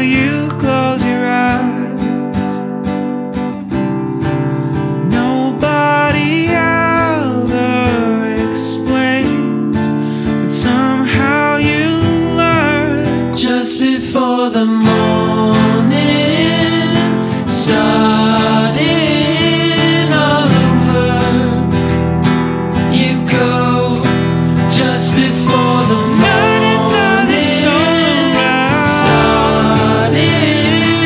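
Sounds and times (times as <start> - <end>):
man singing: 0.0 - 2.7, 5.0 - 22.0, 22.7 - 31.0
acoustic guitars playing: 0.0 - 31.0.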